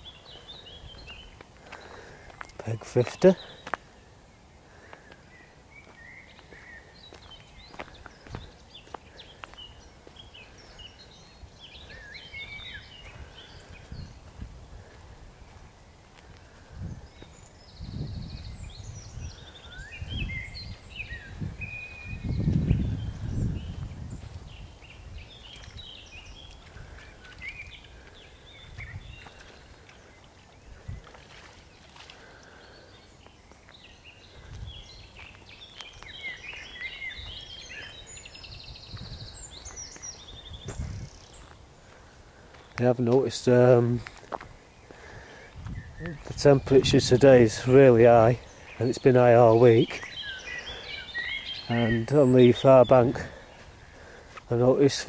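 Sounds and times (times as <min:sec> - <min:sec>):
small birds chirping: 0:00.0 - 0:55.0
microphone handling rumbles and thuds: 0:13.8 - 0:15.5, 0:16.7 - 0:19.4, 0:20.0 - 0:25.9, 0:28.6 - 0:29.4, 0:38.4 - 0:39.5, 0:40.3 - 0:41.2, 0:45.5 - 0:47.2.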